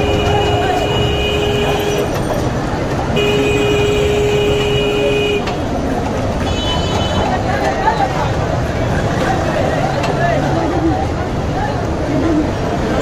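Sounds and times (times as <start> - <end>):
horn blasts: 0.0 - 2.1, 3.1 - 5.6
street noise: 0.0 - 13.0.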